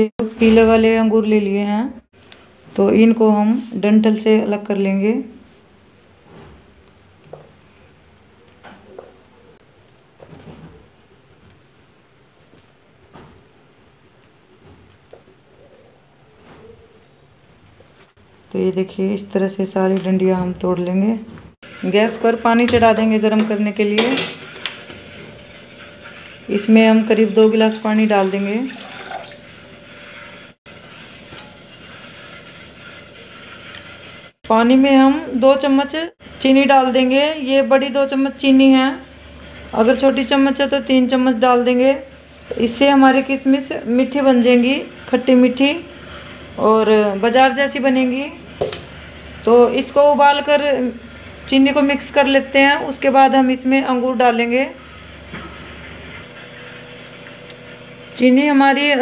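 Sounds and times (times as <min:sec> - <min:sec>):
gas burner hiss and rumble: 0:02.1 - 0:59.0
water pouring into a steel pot: 0:25.4 - 0:33.6.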